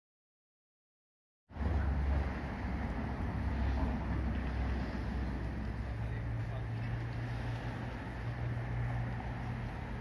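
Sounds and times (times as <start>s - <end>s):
street traffic rumble: 1.5s - 10.0s.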